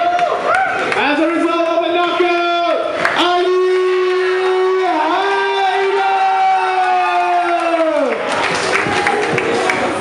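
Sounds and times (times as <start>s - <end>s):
crowd noise in a hall: 0.0s - 10.0s.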